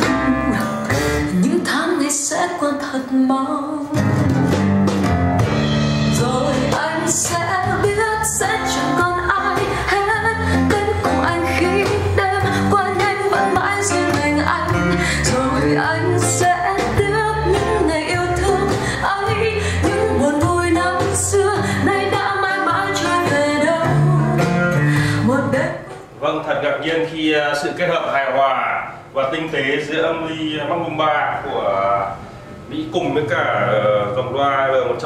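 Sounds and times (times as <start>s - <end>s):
song with singer and guitar: 0.0s - 26.2s.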